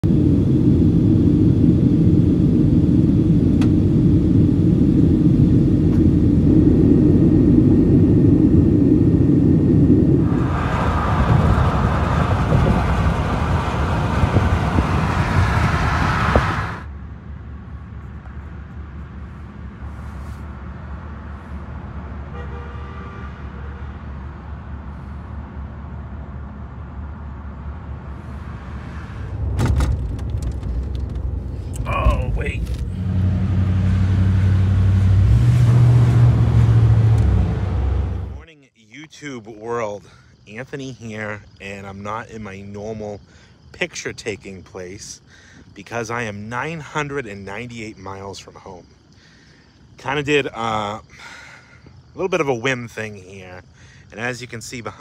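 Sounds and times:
airliner cabin rumble: 0.0s - 16.9s, 28.0s - 38.6s
road and wind noise in car: 0.0s - 38.5s, 40.3s - 50.6s
quiet car ride noise: 17.3s - 22.3s, 24.2s - 33.8s.

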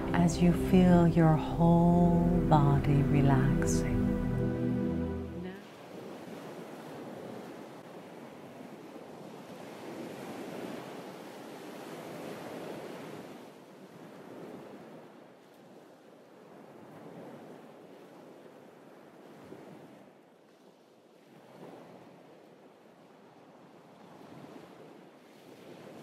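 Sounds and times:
small waves on a pebble beach: 5.6s - 26.0s.

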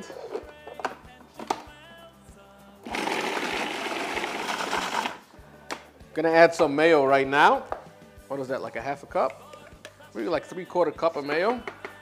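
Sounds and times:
food processor motor blending: 2.9s - 5.2s.

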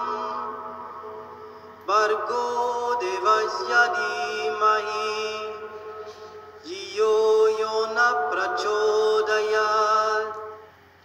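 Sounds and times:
mantra chanting with music: 0.0s - 10.8s.

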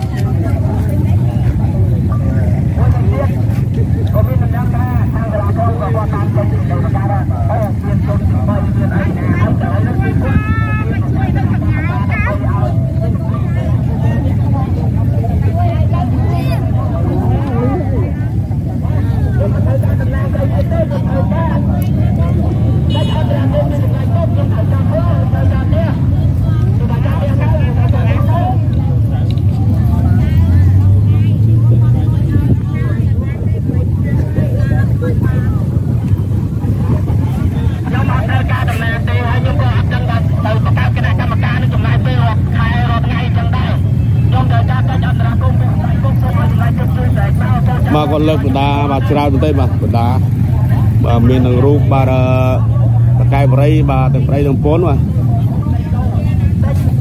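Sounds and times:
crowd speaking: 0.0s - 57.0s
steady low rumble: 0.0s - 57.0s.

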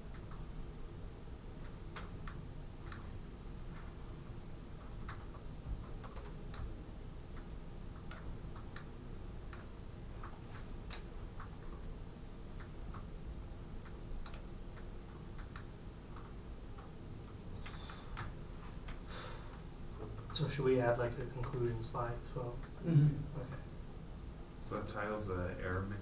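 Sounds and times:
low room hum: 0.0s - 26.0s
laptop keyboard typing: 1.6s - 3.9s, 4.7s - 11.9s, 12.5s - 13.2s, 13.8s - 19.0s.

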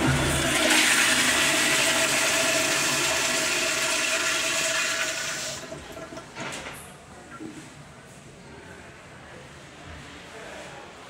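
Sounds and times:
toilet flushing: 0.0s - 6.8s.

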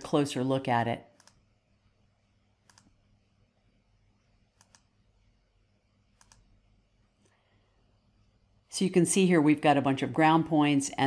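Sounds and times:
computer mouse clicks: 1.1s - 1.5s, 2.6s - 3.0s, 4.5s - 4.9s, 6.1s - 6.6s.

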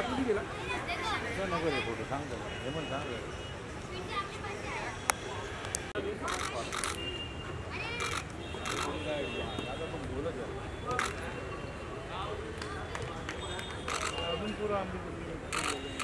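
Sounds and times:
people chattering: 0.0s - 16.0s
camera shutters clicking: 8.0s - 9.0s, 13.9s - 14.3s, 15.5s - 16.0s.

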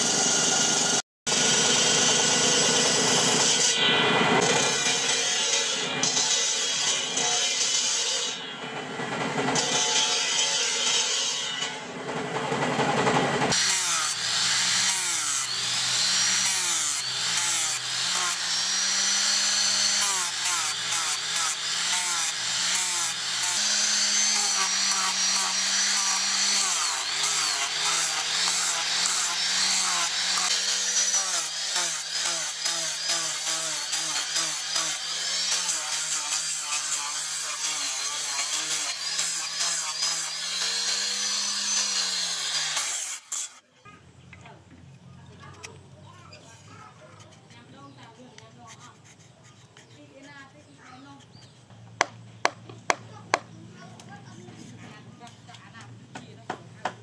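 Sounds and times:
angle grinder whine: 0.0s - 43.6s
wood rasping under sanding disc: 13.5s - 43.6s, 46.6s - 53.5s.

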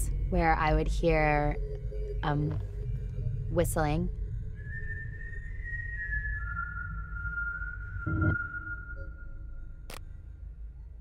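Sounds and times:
low music drone: 0.0s - 5.5s
high whistled tone: 4.5s - 9.8s.

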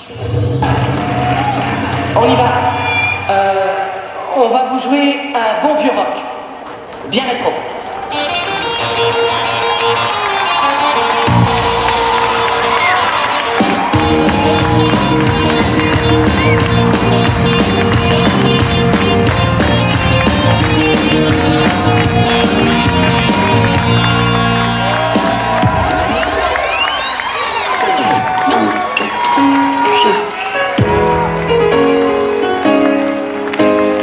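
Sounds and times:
rock and roll band music: 8.2s - 28.0s.

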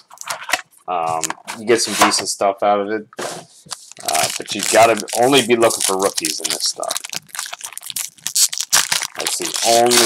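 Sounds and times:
foil wrapper crinkling and tearing: 3.7s - 10.0s.

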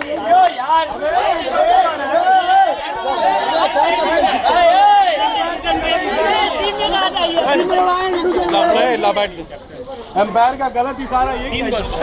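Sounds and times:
overlapping voices: 0.0s - 9.6s.

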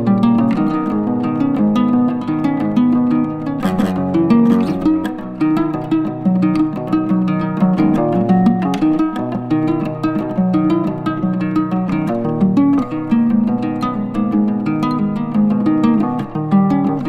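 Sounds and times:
plucked string music: 0.0s - 17.0s.

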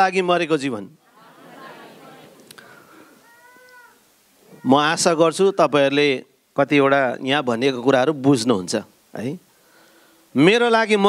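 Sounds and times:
low background murmur: 1.0s - 4.7s
faint high-pitched cry: 2.9s - 5.0s.

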